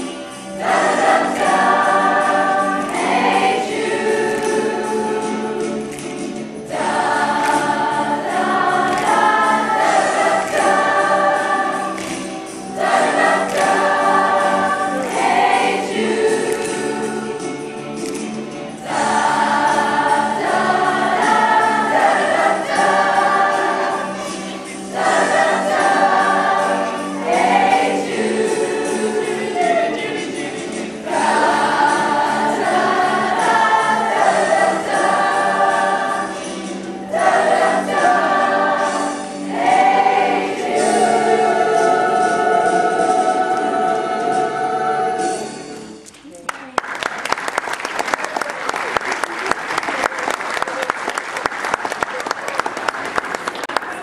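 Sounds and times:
choir singing a pop song: 0.0s - 46.0s.

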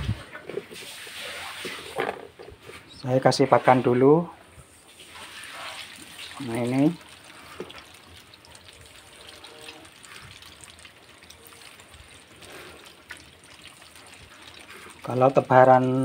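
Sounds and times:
fish splashing in bucket: 4.9s - 15.6s.

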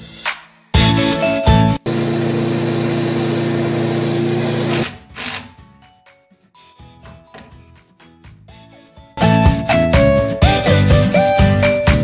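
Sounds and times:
electric metal cutter cutting steel: 1.9s - 5.6s.

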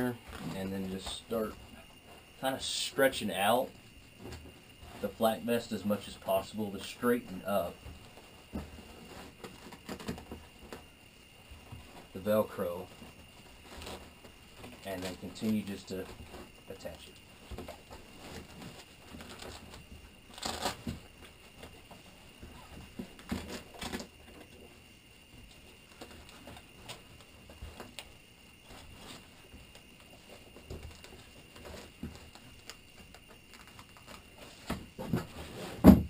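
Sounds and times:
nylon fabric rustling: 11.8s - 24.0s
thump: 34.7s - 36.0s.

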